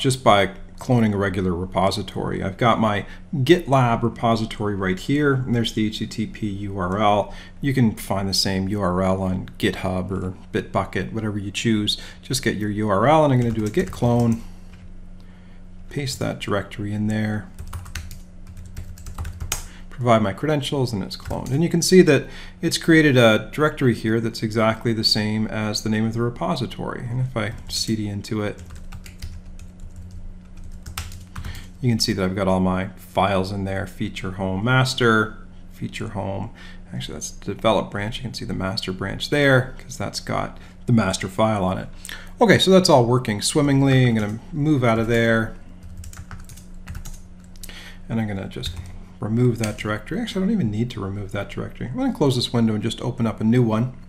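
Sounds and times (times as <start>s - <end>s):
faint low hum: 0.0s - 54.0s
keyboard keys clicking: 45.9s - 47.2s.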